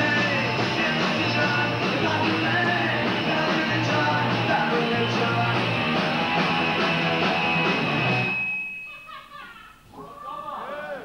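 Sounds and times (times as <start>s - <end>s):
punk rock band chord: 0.0s - 8.4s
high ringing tone: 6.5s - 9.8s.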